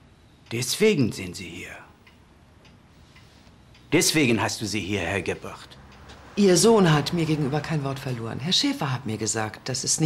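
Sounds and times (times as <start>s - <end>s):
person speaking: 0.5s - 2.0s, 3.8s - 10.0s.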